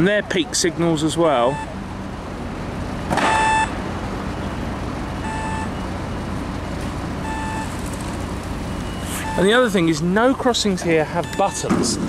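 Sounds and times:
street traffic noise: 0.0 - 12.0
pedestrian crossing beeps: 1.0 - 2.0, 3.2 - 12.0.

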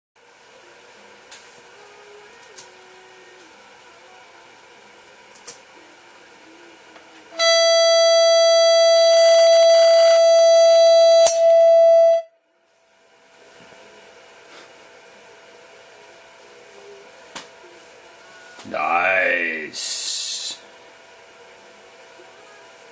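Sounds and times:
loud steady speaker tone: 18.6 - 20.6.

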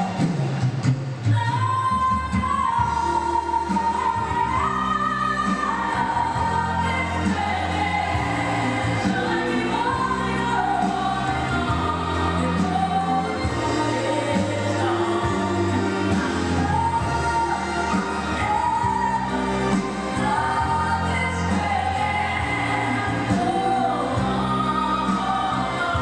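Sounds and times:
backing track: 0.0 - 26.0.

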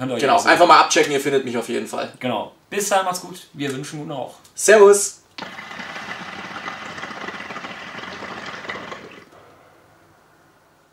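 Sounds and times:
hookah water bubbling: 5.6 - 9.3.

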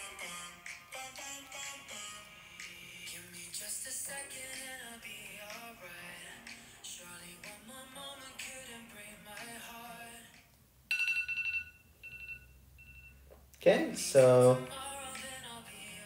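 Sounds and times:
music with singing: 0.0 - 10.5, 14.0 - 16.0
timer alarm beeps: 10.9 - 13.3.

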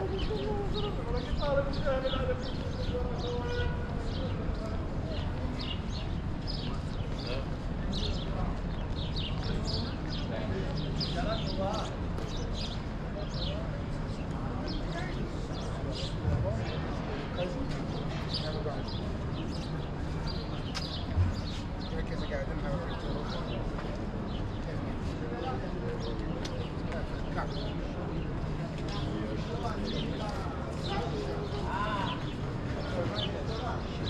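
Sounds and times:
din of people outdoors: 0.0 - 34.0
murmur of voices: 0.0 - 34.0.

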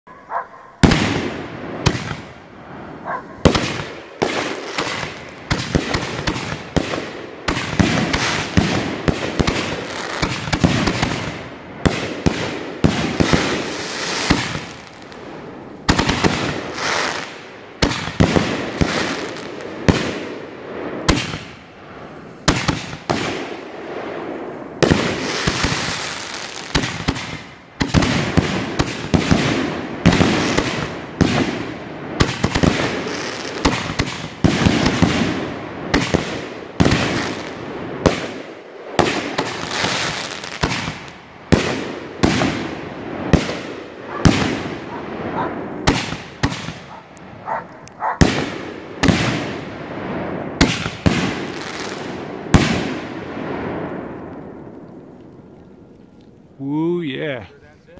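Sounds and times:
crackling fireworks stars: 0.1 - 57.9
fireworks booming: 0.2 - 55.5.

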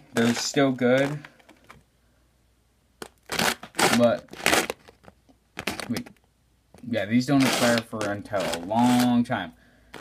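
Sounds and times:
person speaking: 0.0 - 1.4, 3.8 - 4.3, 5.8 - 6.2, 6.8 - 9.6.

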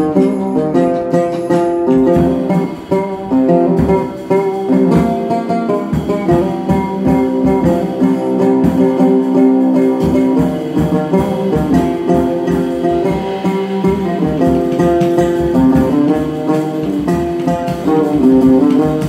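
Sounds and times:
drum kit: 0.0 - 19.0
oud melody: 0.0 - 19.0.

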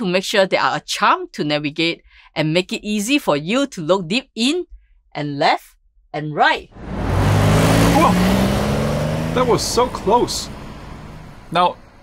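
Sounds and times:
car speeding past: 6.7 - 12.0.

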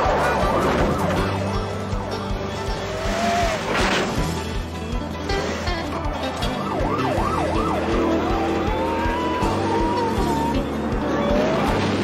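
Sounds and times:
police siren: 0.0 - 2.7, 6.2 - 12.0
tyres skidding: 0.0 - 12.0.

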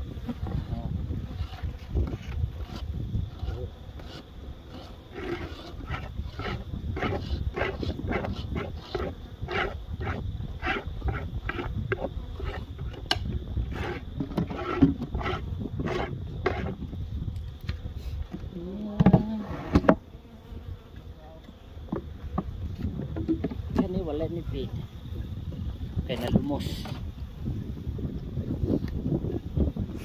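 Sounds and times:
bees buzzing: 0.0 - 17.1.

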